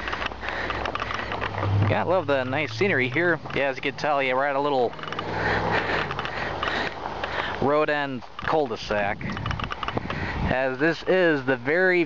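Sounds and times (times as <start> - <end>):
light clicks and scrapes: 0.0 - 7.6, 8.3 - 10.2
car engine hum: 0.0 - 7.7
tyre noise on pavement: 0.0 - 10.5.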